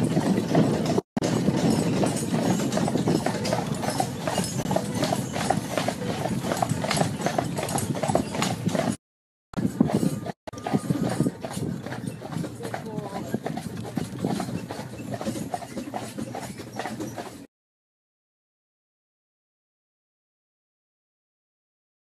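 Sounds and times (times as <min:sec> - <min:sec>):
horse hooves clip-clopping on tarmac: 0:00.0 - 0:09.0, 0:09.6 - 0:17.5.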